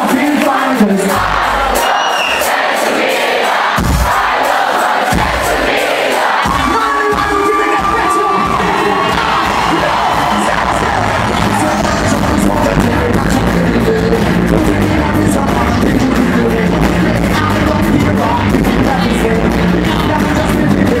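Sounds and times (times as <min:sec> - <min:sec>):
crowd cheering and shouting: 0:00.0 - 0:21.0
loud live band: 0:00.0 - 0:21.0
bass: 0:01.1 - 0:01.8, 0:06.5 - 0:21.0.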